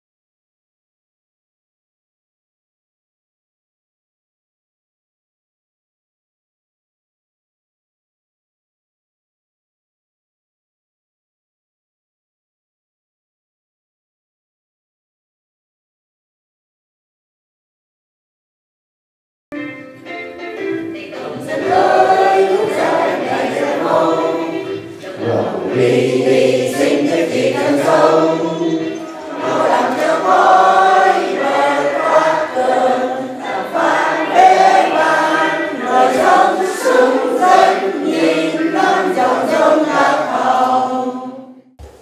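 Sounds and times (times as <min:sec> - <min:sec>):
group singing an anthem: 0:21.0 - 0:41.8.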